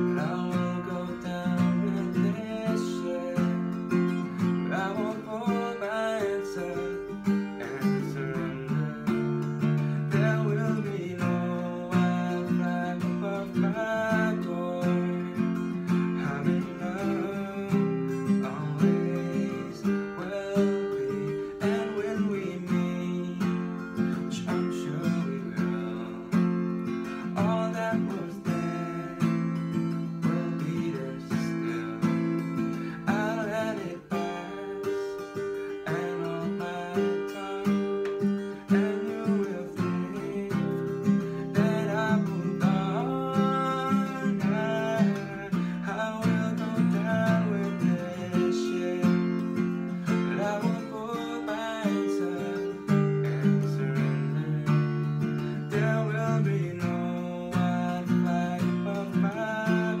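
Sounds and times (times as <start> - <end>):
acoustic guitar strumming chords: 0.0 - 60.0.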